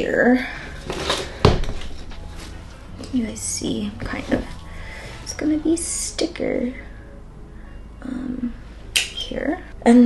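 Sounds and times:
soft handling sounds: 0.7 - 3.4.

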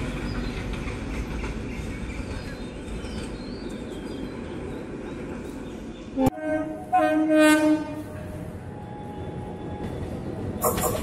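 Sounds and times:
train running noise: 0.0 - 11.0
train horn: 6.2 - 8.5.

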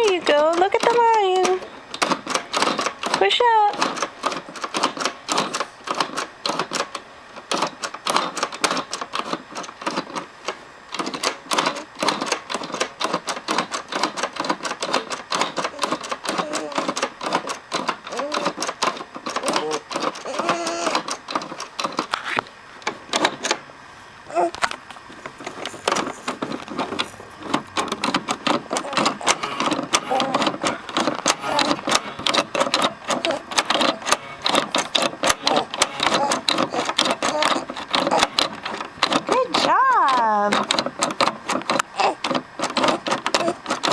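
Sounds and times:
plastic toy clicking rapidly: 0.0 - 22.2, 25.4 - 43.9.

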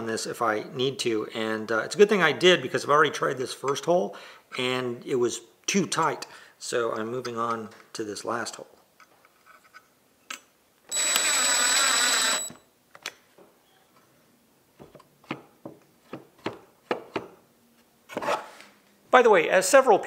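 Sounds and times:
power drill running: 10.9 - 12.6.

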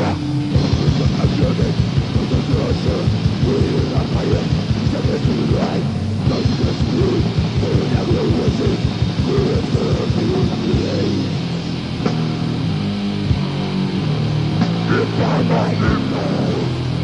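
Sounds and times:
rapid kick drum: 0.0 - 11.2
distorted guitars: 0.0 - 17.0.

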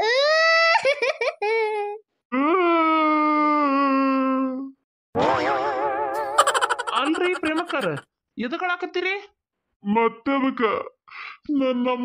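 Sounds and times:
warbling cartoon tone: 6.2 - 8.0.

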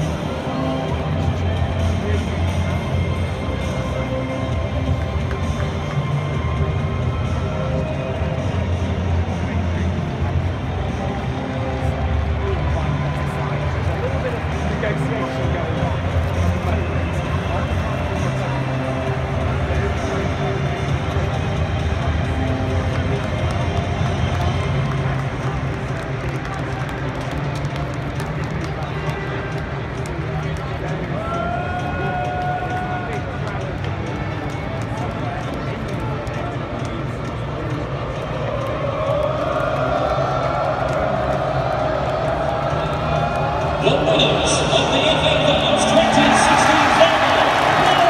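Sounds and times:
music over public address: 0.0 - 48.0
stadium crowd chattering: 0.0 - 48.0.

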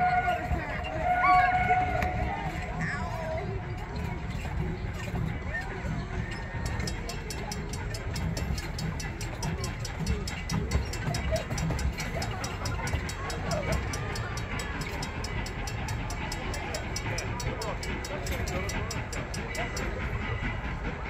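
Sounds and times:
railroad crossing bell ringing: 6.4 - 20.3.

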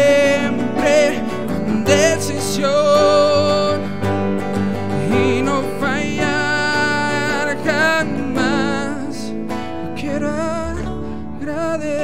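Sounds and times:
man singing with vibrato: 0.0 - 12.0
strummed electric guitar: 0.0 - 12.0.

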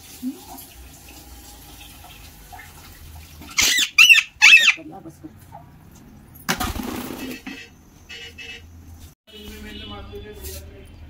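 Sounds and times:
running water from a tap: 0.0 - 3.6
parakeet screeching: 3.5 - 4.8
wings flapping: 6.5 - 7.4.

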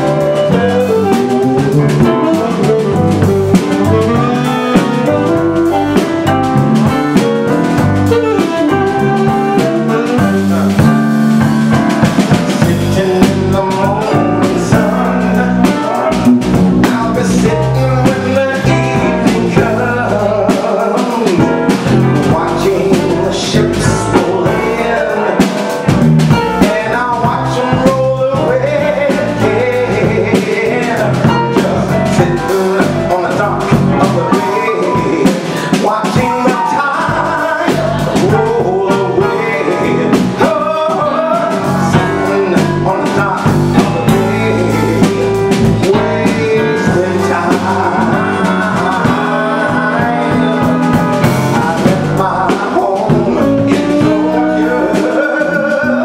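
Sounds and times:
man singing into a microphone: 0.0 - 6.1, 8.0 - 56.0
drum kit: 0.0 - 56.0
electric keyboard: 0.0 - 56.0.

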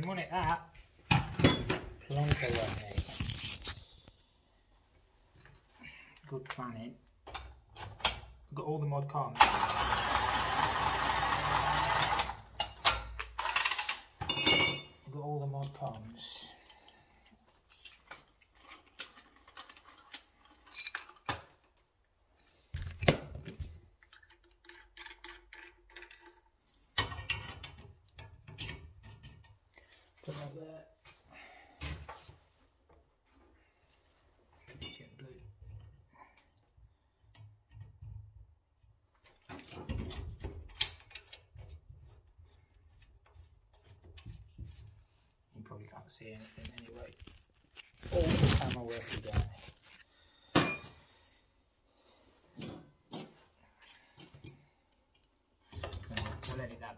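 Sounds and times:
metal fittings clinking and knocking: 22.5 - 29.6.

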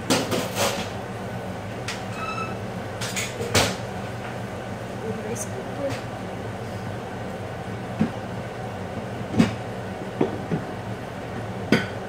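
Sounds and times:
steady low hum: 0.0 - 12.0
faint squeak: 2.1 - 2.6.

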